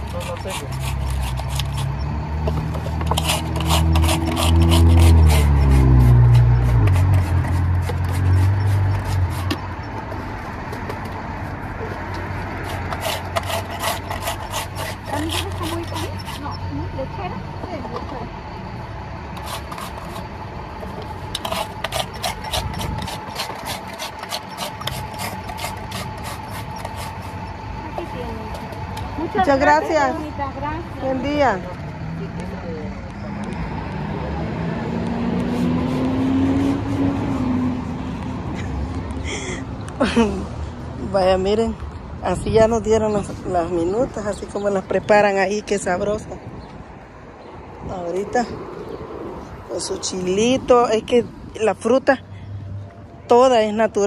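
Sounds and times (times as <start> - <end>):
ice being shaved with a scraper: 0.0 - 9.7, 12.4 - 16.8, 19.4 - 20.3, 21.2 - 29.4, 35.3 - 37.6
vehicle engine running: 15.0 - 45.0.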